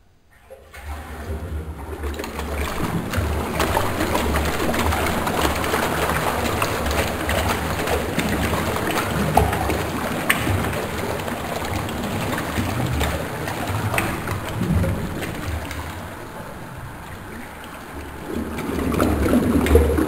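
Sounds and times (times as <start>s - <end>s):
toilet flushing: 0.3s - 20.0s.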